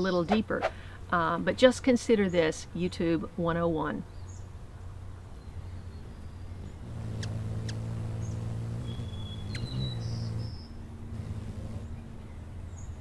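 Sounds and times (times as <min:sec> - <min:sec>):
hummingbird wings humming: 0:05.6 - 0:12.1
high bird chirps: 0:05.7 - 0:10.8
sharp clicks: 0:07.1 - 0:07.8, 0:09.5 - 0:09.8.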